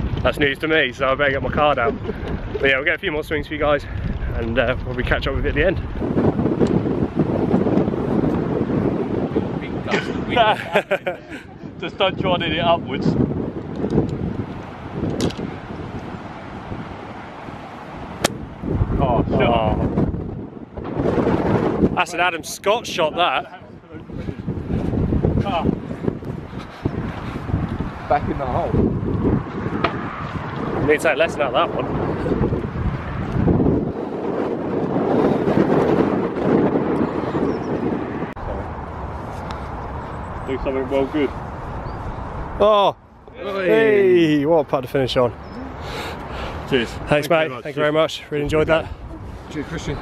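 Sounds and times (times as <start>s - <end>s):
wind buffeting microphone: 0.0s - 50.0s
golf club striking ball: 18.2s - 18.4s.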